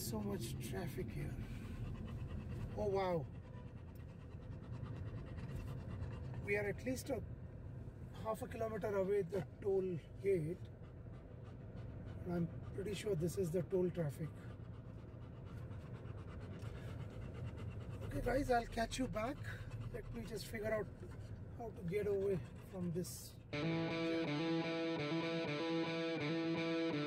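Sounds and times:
dog panting: 0.0s - 7.3s, 8.2s - 27.0s
low rumble of car cabin: 0.0s - 24.2s.

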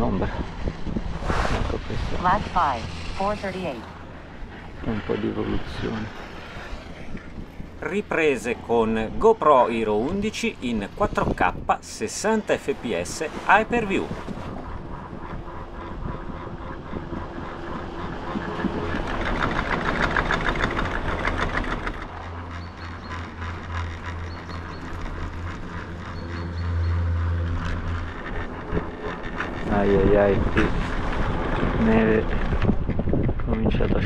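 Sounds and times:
chairlift running noise: 0.0s - 34.0s
low hum: 0.0s - 34.0s
wind: 0.0s - 34.0s
rapid rattling clatter: 13.8s - 34.0s.

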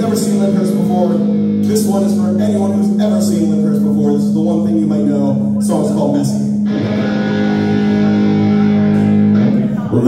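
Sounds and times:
electric guitar sustained chord: 0.0s - 10.0s.

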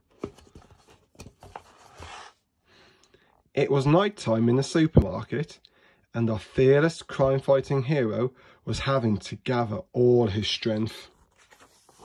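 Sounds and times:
paper rustling of book pages: 0.0s - 2.3s, 10.8s - 12.0s.

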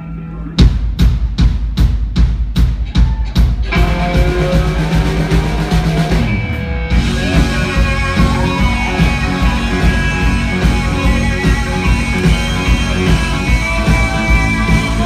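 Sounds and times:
amplified guitars and bass: 0.0s - 0.8s, 3.0s - 15.0s
drum kit beats: 0.6s - 15.0s.

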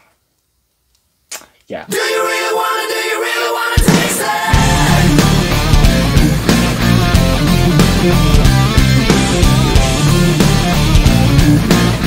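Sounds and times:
intro music: 1.9s - 12.0s.

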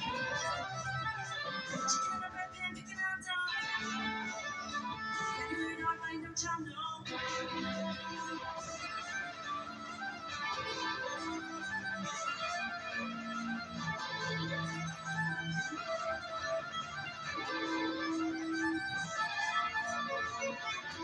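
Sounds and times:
instrumental rock music: 0.0s - 21.0s.

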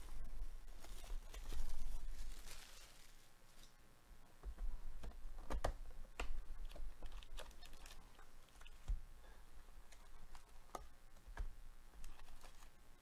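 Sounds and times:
foil card packs crinkling: 0.7s - 3.6s.

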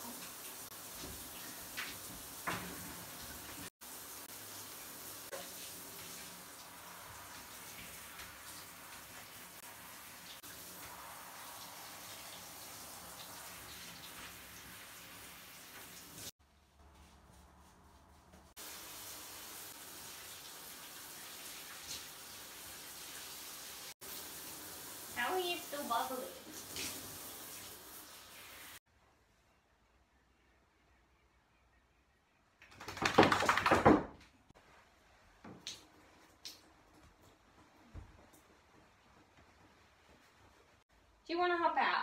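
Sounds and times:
water running into bathtub: 0.0s - 16.4s, 18.4s - 28.9s.

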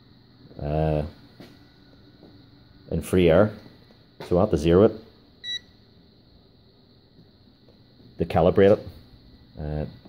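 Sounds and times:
short high meter beep: 5.4s - 5.7s.

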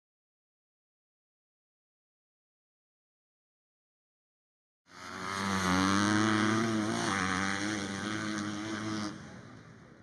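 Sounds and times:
engine running: 4.9s - 10.0s.

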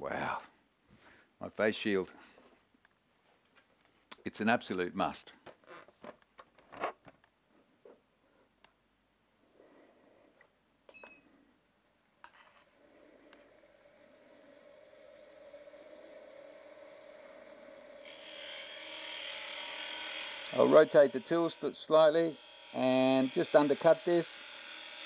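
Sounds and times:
tool cutting spinning wood: 12.6s - 25.0s
lathe motor humming: 13.4s - 25.0s.

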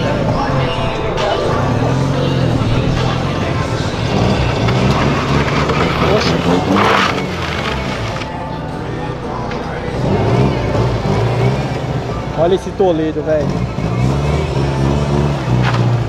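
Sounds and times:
car engines running: 0.0s - 16.0s.

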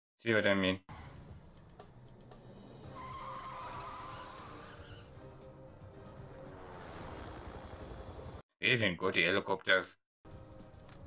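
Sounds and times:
background music: 0.9s - 8.4s, 10.3s - 11.0s
vehicle engine: 0.9s - 8.4s
tyre squeal: 2.8s - 5.3s.

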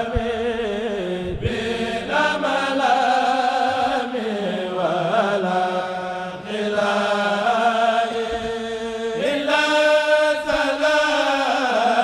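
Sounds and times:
men chanting a cappella: 0.0s - 12.0s.

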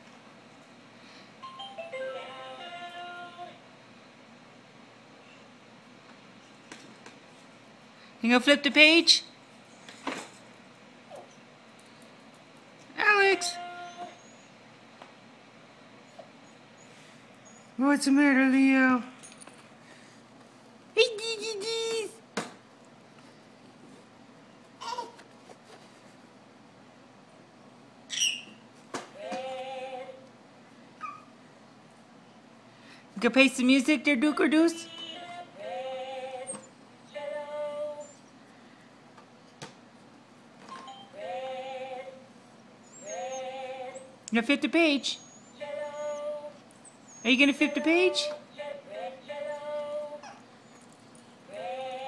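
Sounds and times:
faint room noise: 0.0s - 52.0s.

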